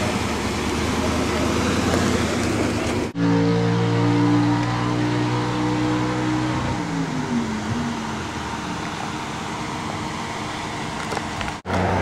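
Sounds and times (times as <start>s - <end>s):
car engine idling: 0.0s - 3.2s, 6.8s - 11.7s
rushing outdoor engine noise: 0.0s - 12.0s.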